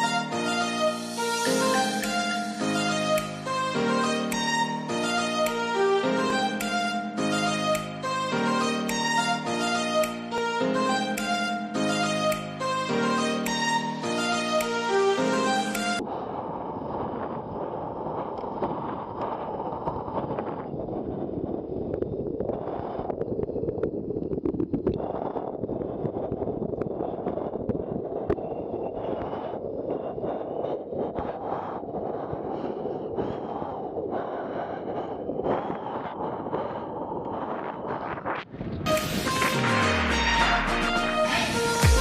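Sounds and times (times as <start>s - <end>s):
wind on camera microphone: 16.0s - 39.5s.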